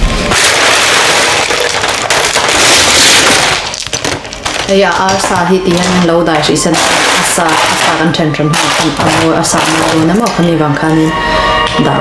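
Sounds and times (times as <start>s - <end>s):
ice cubes rattling into foil pan: 0.2s - 11.1s.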